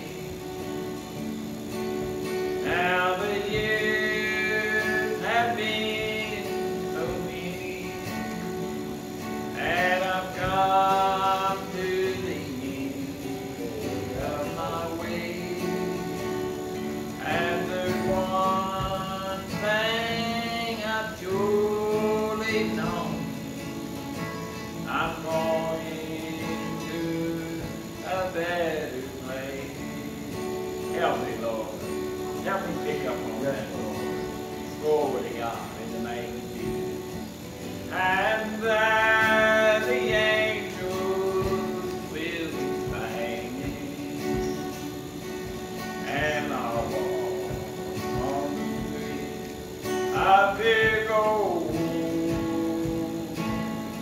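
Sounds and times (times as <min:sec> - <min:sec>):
man singing gospel: 0:00.0 - 0:23.7, 0:24.7 - 0:54.0
guitar accompaniment: 0:00.0 - 0:54.0.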